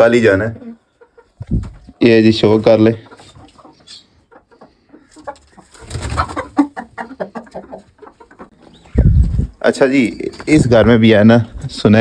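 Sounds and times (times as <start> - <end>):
coop birds: 2.7 - 9.5.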